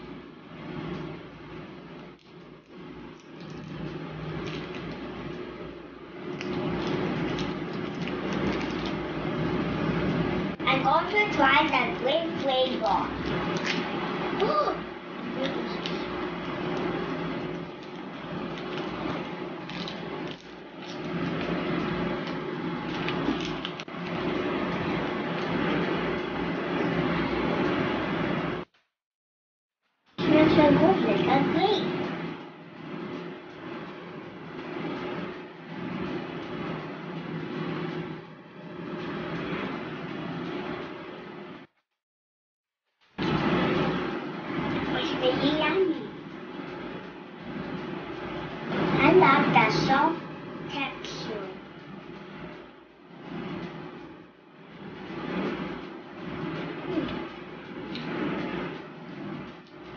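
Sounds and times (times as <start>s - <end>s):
low background hum: 0.0s - 28.7s, 30.2s - 41.7s, 43.1s - 59.9s
plastic wrapper crinkling: 6.4s - 9.0s.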